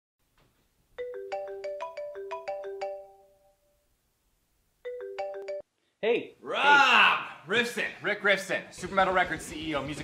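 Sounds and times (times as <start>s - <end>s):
phone ringtone melody: 1.0s - 3.6s, 4.9s - 5.7s.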